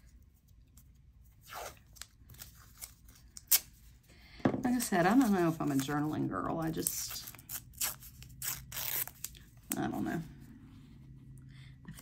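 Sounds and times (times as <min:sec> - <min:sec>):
tape peeling and tearing: 0:00.8 - 0:03.8, 0:06.8 - 0:09.4.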